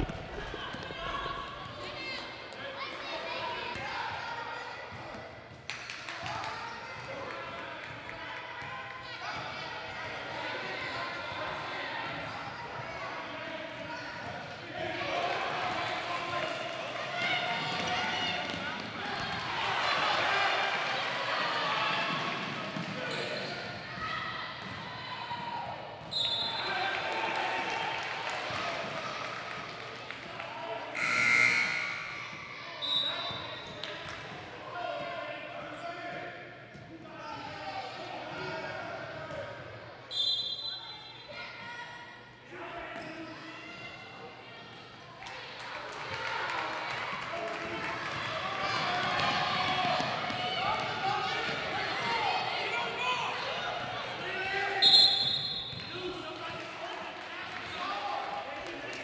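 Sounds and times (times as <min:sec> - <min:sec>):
basketball bouncing: 0:00.0 - 0:01.7
spectators' voices: 0:00.0 - 0:05.5, 0:41.6 - 0:59.0
sneakers squeaking: 0:22.8 - 0:23.8, 0:54.8 - 0:56.0.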